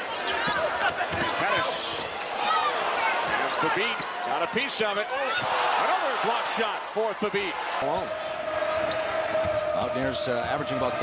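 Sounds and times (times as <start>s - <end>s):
crowd noise: 0.0s - 11.0s
tv commentary: 9.8s - 11.0s.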